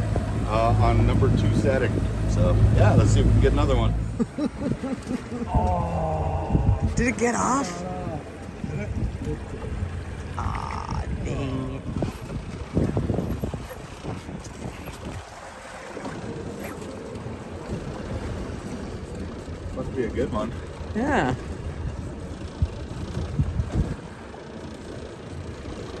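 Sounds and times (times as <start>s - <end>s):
wind buffeting microphone: 0.0s - 24.8s
outboard motor running: 0.0s - 26.0s.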